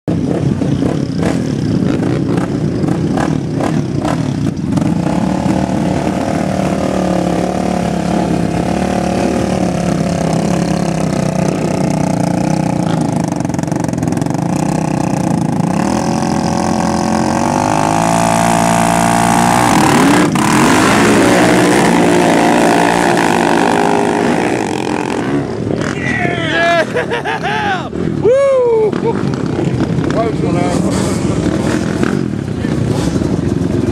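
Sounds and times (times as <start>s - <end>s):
quad engine revving: 0.1s - 26.0s, 28.9s - 33.9s
engines idling: 0.2s - 17.3s.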